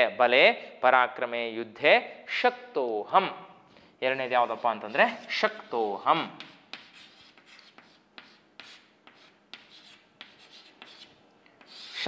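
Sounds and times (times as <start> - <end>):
chalk scratching on chalkboard: 4.3 - 12.0.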